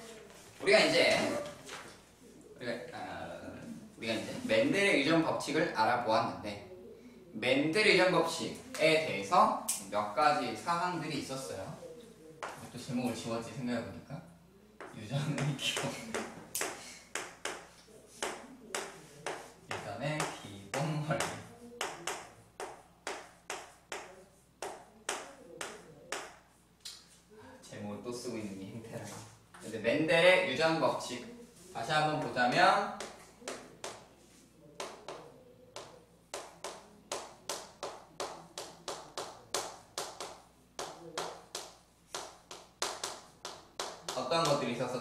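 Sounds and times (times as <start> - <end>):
chalk tapping on chalkboard: 14.8 - 26.6, 33.0 - 44.6.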